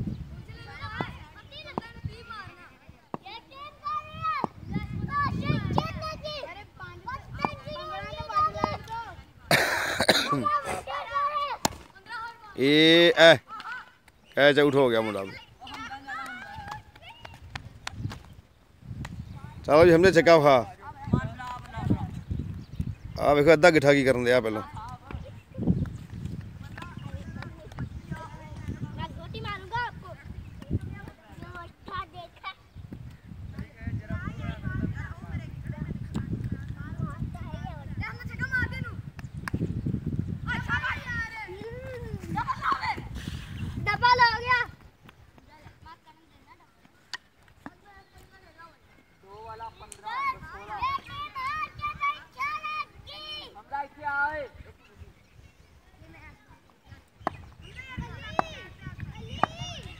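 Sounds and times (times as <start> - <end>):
wind rumble on microphone: 0.0 - 9.5, 16.4 - 45.9, 49.7 - 53.4, 54.4 - 59.9
boys shouting: 3.2 - 9.3, 10.0 - 17.4, 40.4 - 43.2, 43.8 - 44.8, 49.3 - 54.6, 57.6 - 59.9
children calling out: 3.5 - 12.5
loud cough: 9.5 - 10.5.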